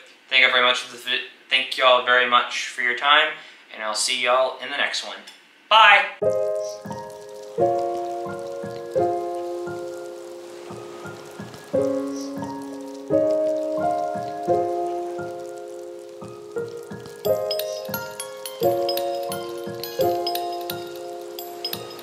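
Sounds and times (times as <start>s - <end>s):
light crackly haze: 6.2s - 22.0s.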